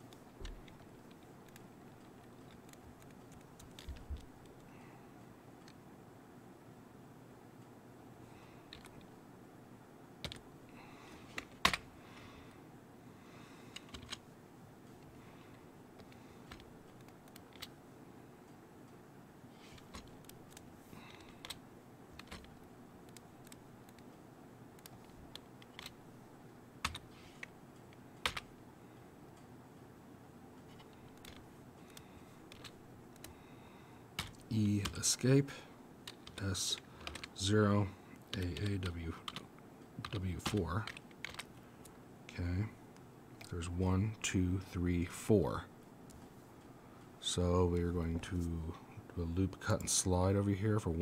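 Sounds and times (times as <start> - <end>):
faint room hum: 0.0 - 51.0
keyboard and mouse clicks: 0.1 - 4.7, 8.7 - 9.1, 10.2 - 10.4, 13.7 - 14.2, 16.0 - 17.8, 19.6 - 21.6, 22.2 - 24.1, 24.8 - 26.0, 26.8 - 28.5, 30.6 - 33.4, 34.2 - 35.0, 36.0 - 37.4, 38.2 - 41.5.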